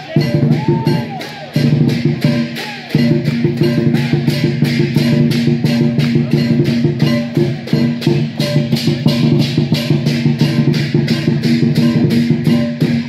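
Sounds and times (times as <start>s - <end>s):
rhythmic music with fast beat: 0.0s - 13.0s.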